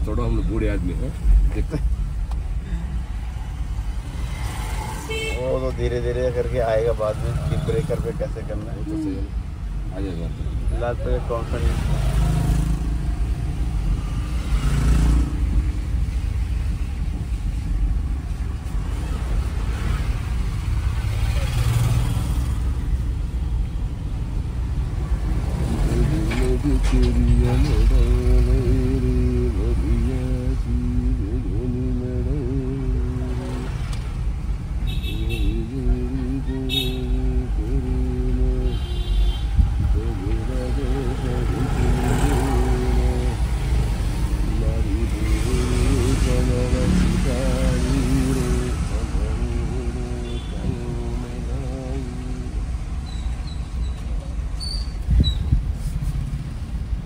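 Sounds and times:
car engine and road rumble: 0.0 - 57.0
person singing: 39.9 - 43.5, 44.4 - 52.7.

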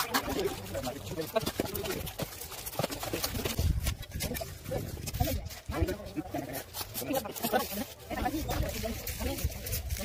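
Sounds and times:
workers talking: 0.0 - 10.0.

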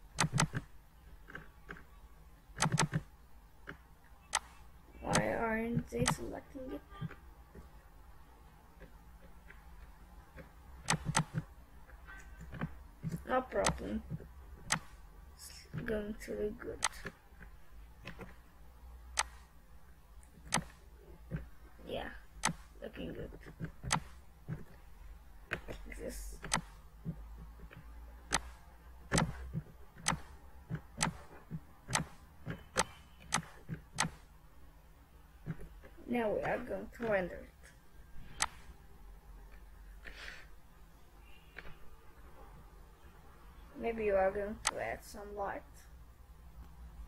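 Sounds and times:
low steady hum: 0.0 - 47.0
computer mouse clicks: 0.1 - 2.0, 2.6 - 6.4, 8.8 - 11.5, 12.2 - 16.0, 16.8 - 18.4, 19.1 - 19.5, 20.2 - 21.5, 22.4 - 24.8, 25.5 - 34.3, 35.4 - 38.7, 44.6 - 44.9.

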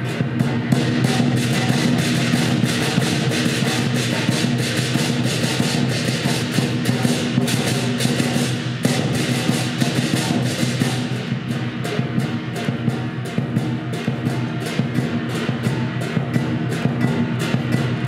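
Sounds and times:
clashing cymbals: 0.0 - 18.0
large drum beaten rapidly: 0.0 - 18.0.

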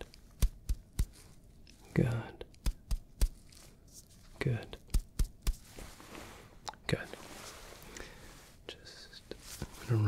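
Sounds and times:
soft spoken word: 1.8 - 2.5, 4.3 - 4.8, 6.7 - 7.3, 8.7 - 10.0.

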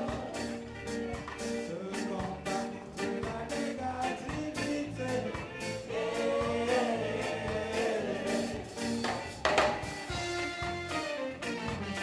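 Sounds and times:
several voices singing together: 0.0 - 0.7, 3.6 - 9.2
live reggae band playing: 0.0 - 12.0.

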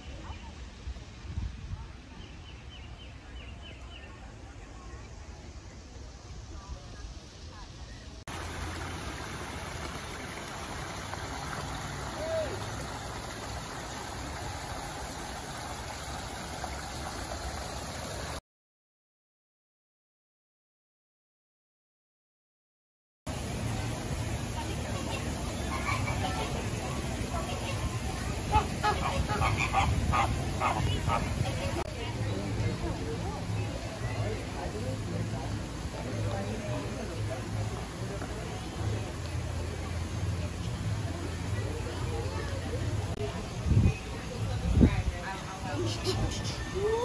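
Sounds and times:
stream rushing over rocks: 8.3 - 18.4
flamingos honking: 28.3 - 31.8.

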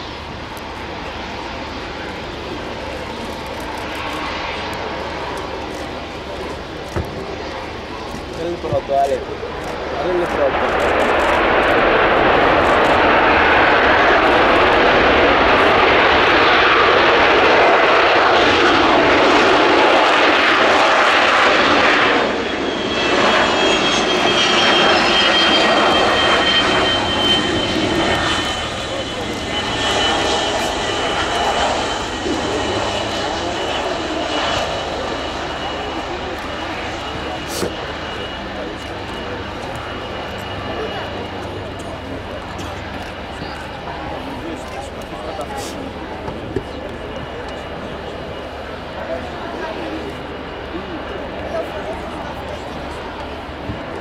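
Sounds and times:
jet engines running: 0.0 - 54.0.

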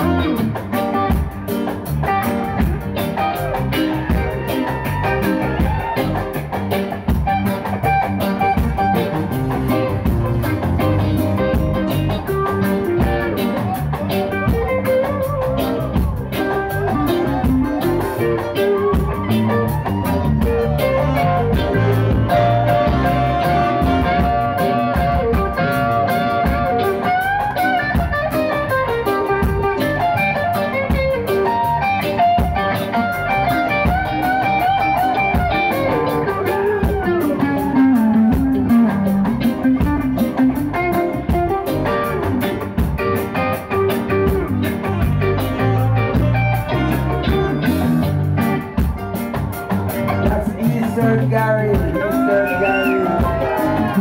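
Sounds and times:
electric guitar lead with bending notes: 0.0 - 54.0
live reggae band playing: 0.0 - 54.0.

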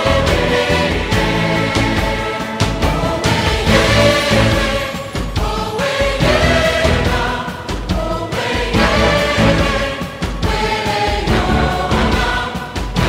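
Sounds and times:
choir singing: 0.0 - 13.0
instrumental accompaniment with beat: 0.0 - 13.0.

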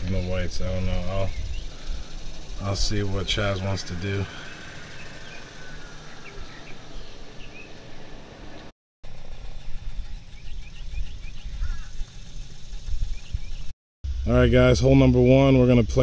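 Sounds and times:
small birds chirping: 0.0 - 15.1.

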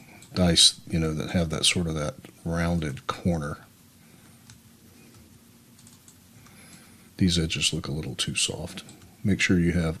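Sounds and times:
keyboard and mouse clicks: 4.4 - 6.8.

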